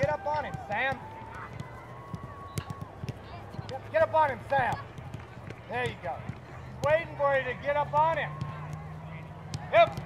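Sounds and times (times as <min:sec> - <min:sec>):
balls kicked on artificial turf: 0:00.0 - 0:10.0.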